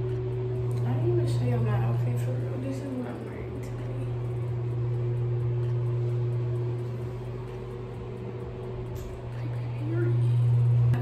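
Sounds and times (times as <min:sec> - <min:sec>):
bathroom exhaust fan humming: 0:00.0 - 0:11.0.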